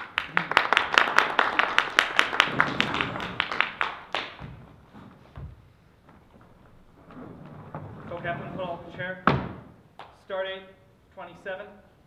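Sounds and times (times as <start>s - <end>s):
hands clapping: 0.0s - 4.8s, 10.0s - 10.2s
chair thud on wooden stage: 2.1s - 6.7s, 9.2s - 9.8s.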